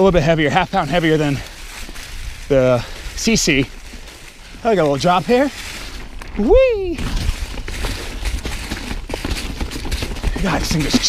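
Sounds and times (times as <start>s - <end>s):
tyres crackling through dry leaves: 0.0s - 11.0s
wind buffeting microphone: 0.0s - 11.0s
bike clicks and rattles: 0.1s - 11.0s.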